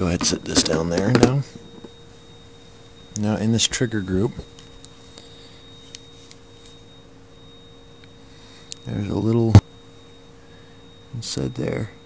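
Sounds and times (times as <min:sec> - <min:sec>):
electrical hum: 0:00.0 - 0:12.0
high-pitched whine: 0:00.0 - 0:12.0.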